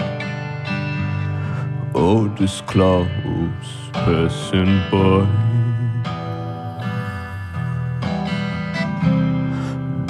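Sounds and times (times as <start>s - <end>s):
strummed acoustic guitar chords: 0.0s - 10.0s.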